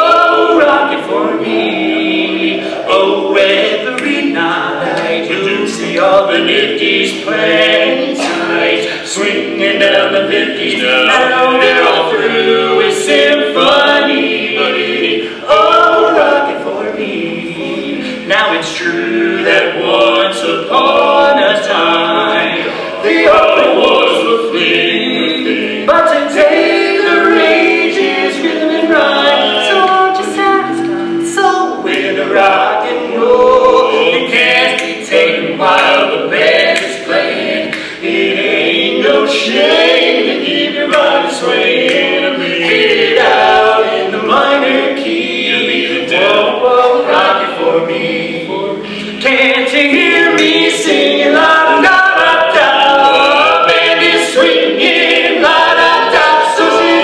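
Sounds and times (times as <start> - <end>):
male quartet singing a cappella: 0.0 - 57.0.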